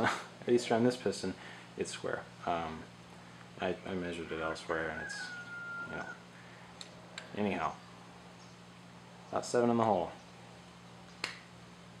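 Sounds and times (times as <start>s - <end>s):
sharp click: 11.1s - 11.5s.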